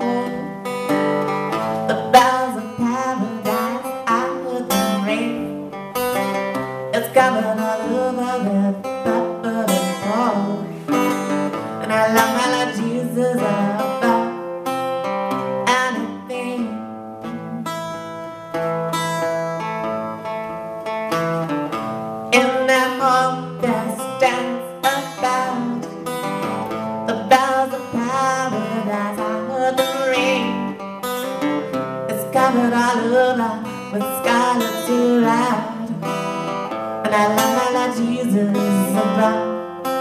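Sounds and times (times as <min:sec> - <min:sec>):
acoustic bass guitar low line: 0:00.0 - 0:40.0
acoustic guitar plucked notes: 0:00.0 - 0:40.0.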